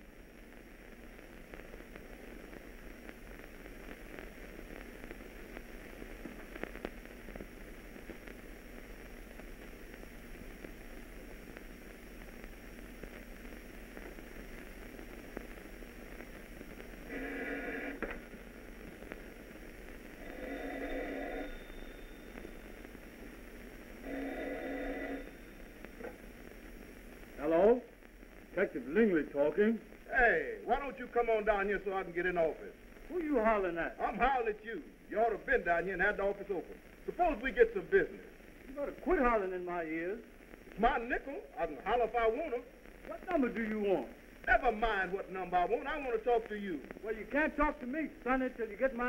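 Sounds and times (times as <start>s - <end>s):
film soundtrack hiss and crackle: 0.0s - 49.0s
telephone ringing: 17.1s - 18.1s, 20.2s - 22.7s, 24.0s - 25.6s.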